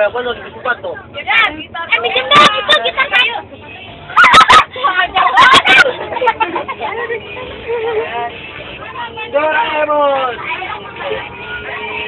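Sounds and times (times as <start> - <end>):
bus running noise: 0.0 - 12.0
teenagers chattering and shouting: 0.0 - 12.0.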